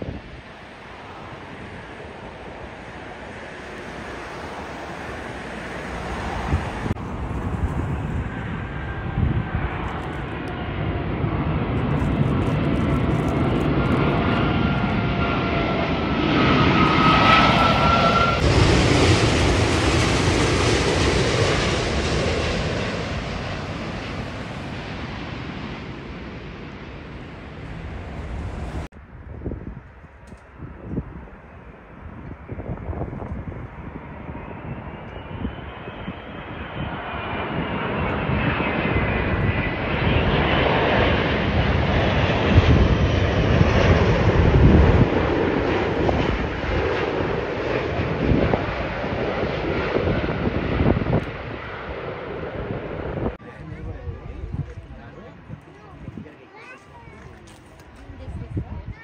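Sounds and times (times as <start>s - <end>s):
jet engine whine and rumble: 0.0s - 59.0s.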